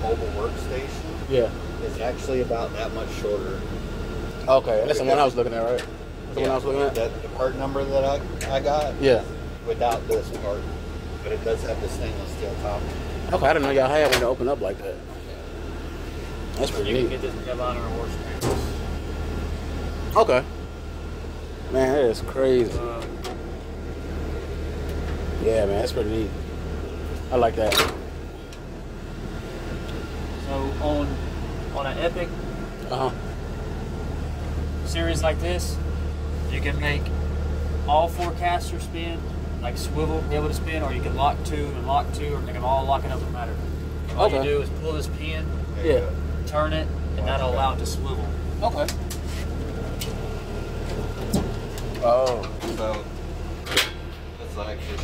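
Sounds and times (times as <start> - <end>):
idling truck hum: 0.0 - 55.0.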